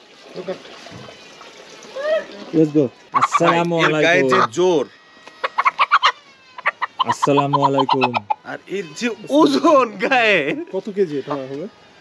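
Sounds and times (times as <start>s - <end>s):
chicken clucking: 3.2s - 4.6s, 5.3s - 8.6s.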